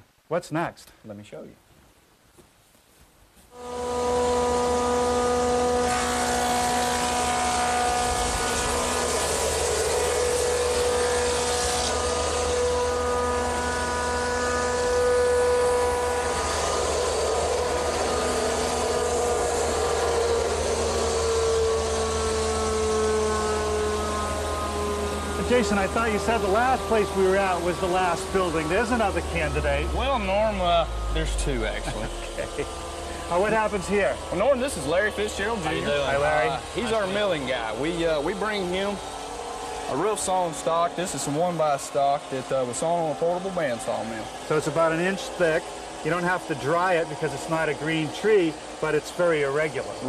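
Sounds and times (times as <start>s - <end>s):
woodworking machinery whining: 3.5s - 50.0s.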